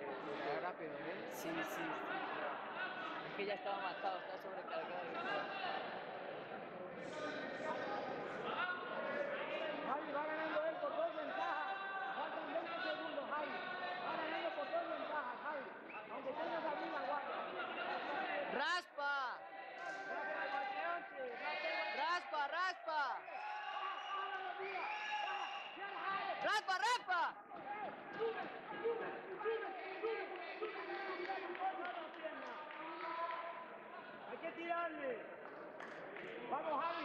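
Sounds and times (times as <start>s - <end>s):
people talking and calling out: 0.0s - 37.0s.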